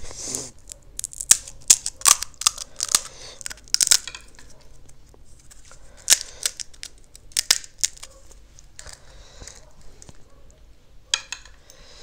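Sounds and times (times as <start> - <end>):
crisp shell cracking: 0.4 - 10.2
soft rustle: 4.4 - 5.9.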